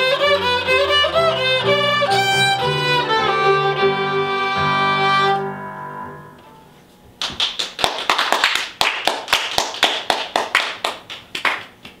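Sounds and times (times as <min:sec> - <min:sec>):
violin note ringing: 0:00.0 - 0:07.0
people clapping: 0:07.2 - 0:12.0.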